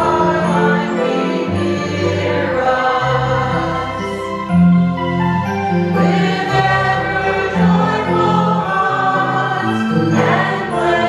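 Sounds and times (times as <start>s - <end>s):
choir singing a hymn: 0.0s - 11.0s
electric keyboard accompaniment: 0.0s - 11.0s.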